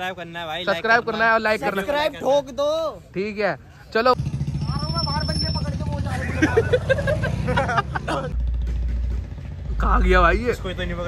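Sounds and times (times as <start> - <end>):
vehicle engine running: 4.2 - 11.0
people talking: 4.6 - 8.4.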